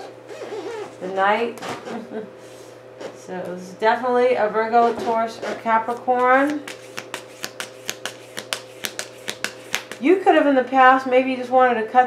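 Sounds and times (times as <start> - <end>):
cards being shuffled: 5.9 - 10.0.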